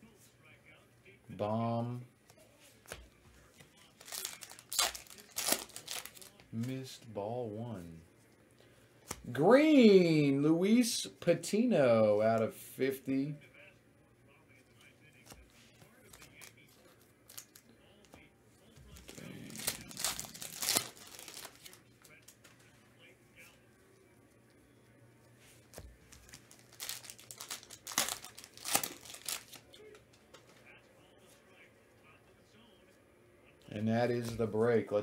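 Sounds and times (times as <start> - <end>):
cards rustling: 2.6 - 7.8, 8.8 - 10.0, 14.8 - 18.2, 18.8 - 22.8, 25.3 - 30.7.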